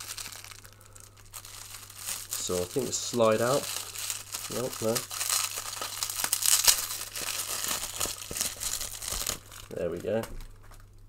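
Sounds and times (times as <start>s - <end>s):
packaging crinkling: 0.0s - 11.0s.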